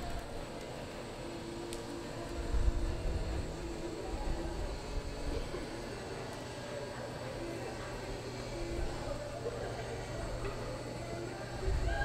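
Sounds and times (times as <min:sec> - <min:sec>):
faint humming: 0:00.0 - 0:12.0
low rumble in indoor arena: 0:00.0 - 0:12.0.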